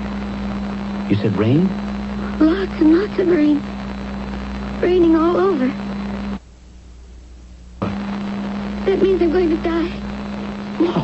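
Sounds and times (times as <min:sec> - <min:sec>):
radio hiss and hum: 0:00.0 - 0:11.0.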